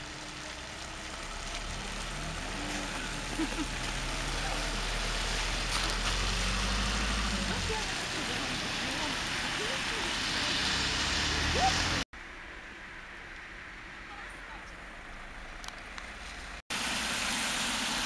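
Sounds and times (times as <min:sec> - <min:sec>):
tyre hiss on wet road: 0:00.0 - 0:12.0
car engine hum: 0:00.0 - 0:12.4.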